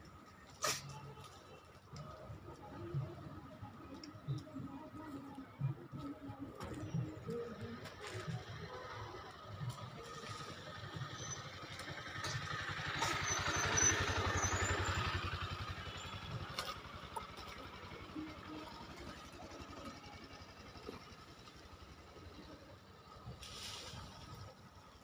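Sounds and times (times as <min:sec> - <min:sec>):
vehicle engine passing by: 0:08.3 - 0:20.8.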